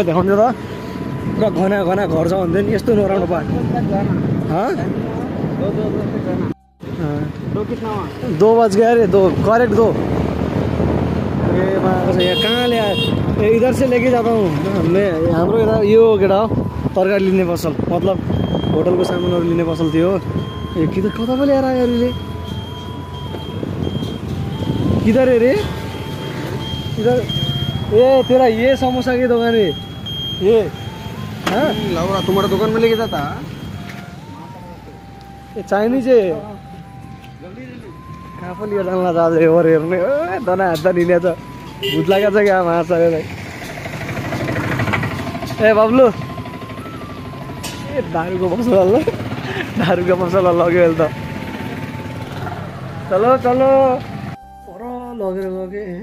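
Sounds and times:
wind and road noise: 0.0 - 54.7
auto-rickshaw engine chugging: 6.8 - 37.0, 37.9 - 54.4
thin wavering high tone: 14.4 - 43.2, 45.2 - 49.2, 50.2 - 56.0
small scooter engine rumble: 43.0 - 53.6.

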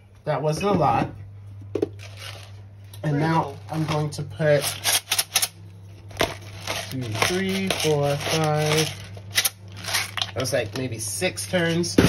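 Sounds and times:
spice grinder crunching: 6.2 - 10.5.

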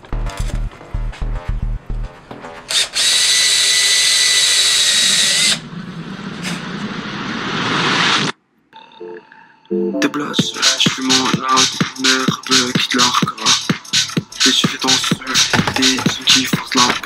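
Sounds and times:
cordless drill whining: 2.7 - 5.6
short music beat: 9.8 - 17.0.

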